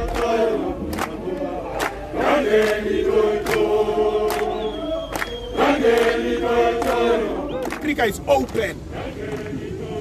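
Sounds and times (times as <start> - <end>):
sharp hand claps: 0.0 - 1.2, 1.8 - 8.6
crowd singing in chorus: 0.0 - 7.9, 8.8 - 10.0.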